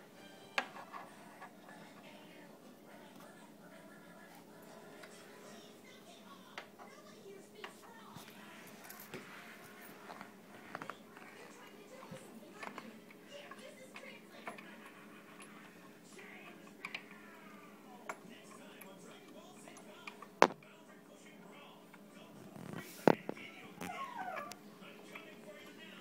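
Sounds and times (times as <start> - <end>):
background music: 0.0 - 5.5
faint background speech: 0.0 - 26.0.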